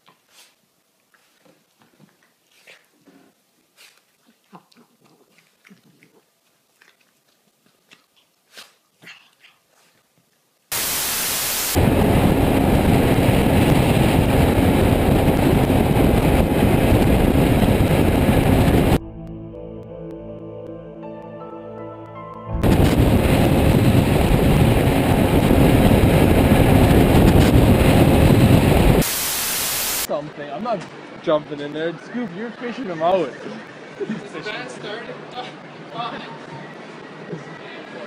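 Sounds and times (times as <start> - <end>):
wind and road noise: 10.7 - 19.0, 22.6 - 38.0
music: 19.0 - 22.7.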